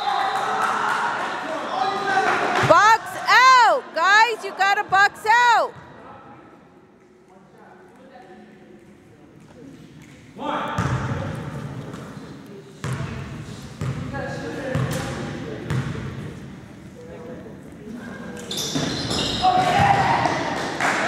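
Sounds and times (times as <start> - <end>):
voices in a hall: 0.0 - 21.0.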